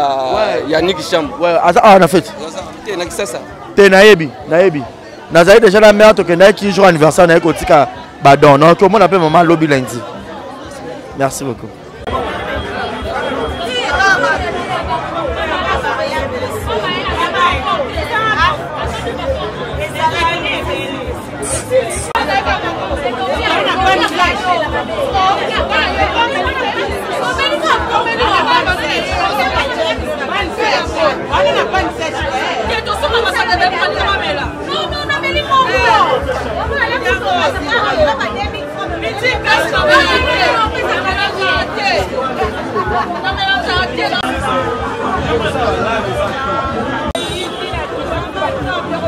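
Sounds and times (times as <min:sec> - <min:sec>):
chatter of many voices: 0:00.0 - 0:49.0
music: 0:12.0 - 0:46.8.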